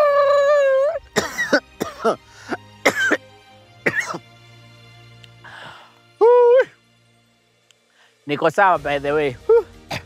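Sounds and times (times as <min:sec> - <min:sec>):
man coughing: 0:01.2 - 0:03.2, 0:03.8 - 0:04.2
man's high held vocal: 0:06.2 - 0:06.8.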